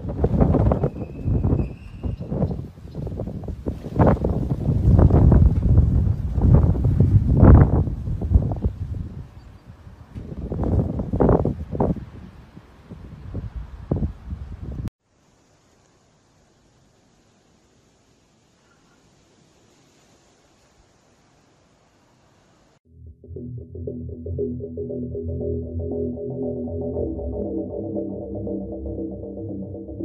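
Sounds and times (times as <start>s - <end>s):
wind buffeting microphone: 0.0s - 14.9s.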